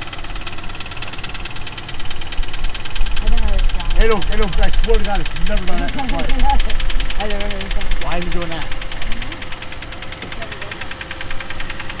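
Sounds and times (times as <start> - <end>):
car engine idling: 0.0 - 12.0
rapid ticking engine rattle: 0.0 - 12.0.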